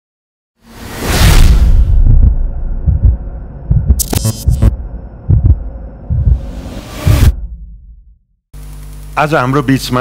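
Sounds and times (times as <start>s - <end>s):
deep throbbing bass pulses: 1.8s - 8.2s.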